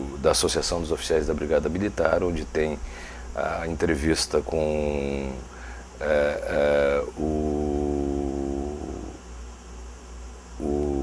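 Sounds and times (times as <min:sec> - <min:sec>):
low electrical hum: 0:00.0 - 0:11.0
man's drawn-out ooo: 0:06.0 - 0:09.2, 0:10.6 - 0:11.0.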